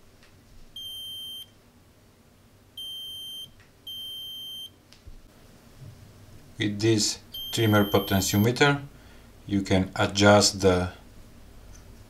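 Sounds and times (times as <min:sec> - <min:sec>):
metal detector beeping: 0:00.8 - 0:01.5, 0:02.8 - 0:04.7, 0:07.4 - 0:08.6.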